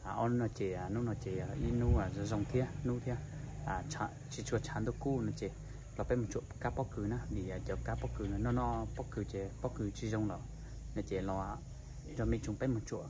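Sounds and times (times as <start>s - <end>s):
low background hum: 0.0s - 13.0s
man talking: 0.0s - 13.0s.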